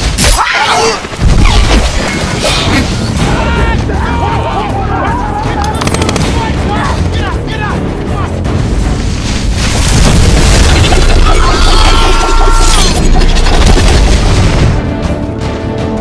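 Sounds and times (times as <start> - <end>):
people shouting: 0.2 - 1.6, 2.4 - 8.3, 11.0 - 13.0
film music: 2.0 - 16.0
deep rumbling booms: 8.4 - 11.4.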